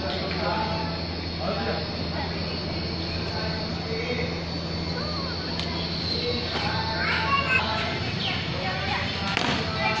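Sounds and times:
faint scattered voices: 0.0 - 10.0
steady low hum: 0.0 - 10.0.

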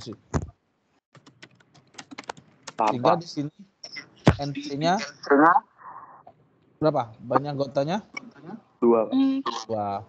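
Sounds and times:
person speaking: 0.0 - 0.5, 1.3 - 10.0
keyboard typing: 1.1 - 3.2.

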